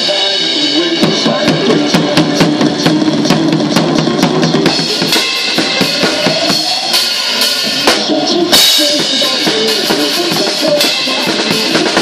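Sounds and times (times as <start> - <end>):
drum kit played fast: 0.0 - 12.0.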